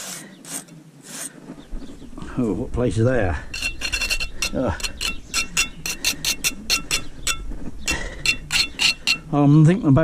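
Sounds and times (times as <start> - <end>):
trowel scraping mortar joints: 3.4 - 9.4.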